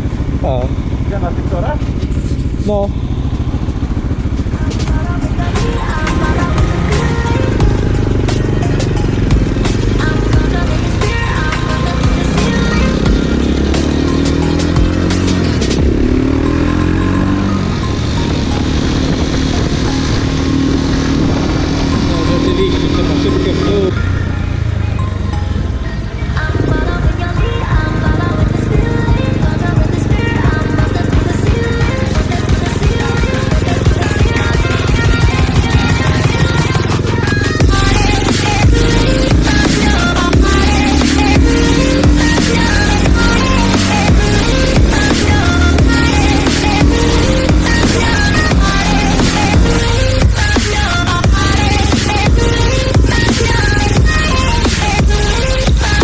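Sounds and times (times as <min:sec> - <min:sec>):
background music: 0:00.0 - 0:56.0
motorcycle engine accelerating: 0:00.0 - 0:56.0.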